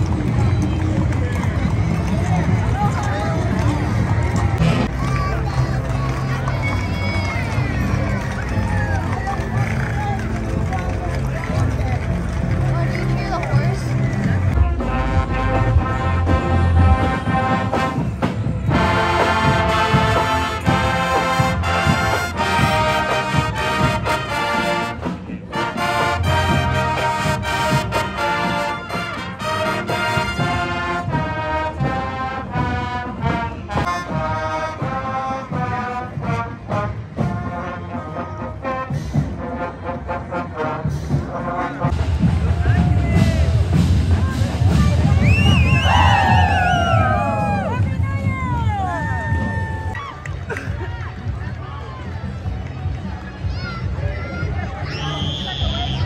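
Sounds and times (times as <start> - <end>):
marching band brass horns: 0.0 - 52.2.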